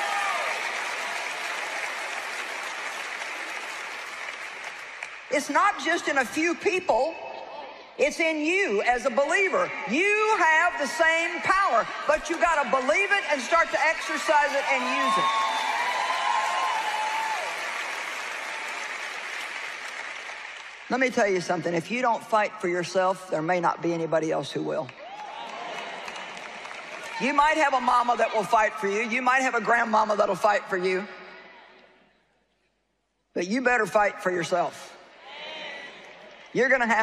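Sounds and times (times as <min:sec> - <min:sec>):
audience applauding: 0:00.0 - 0:05.3, 0:13.2 - 0:20.9, 0:25.0 - 0:27.6.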